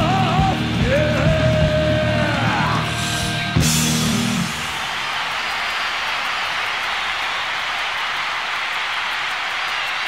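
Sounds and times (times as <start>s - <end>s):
crowd cheering and applauding: 0.0s - 10.0s.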